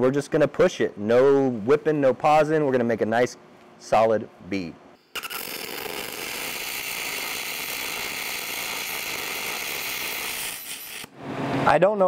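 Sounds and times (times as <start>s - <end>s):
welding arc crackling: 5.1s - 11.1s.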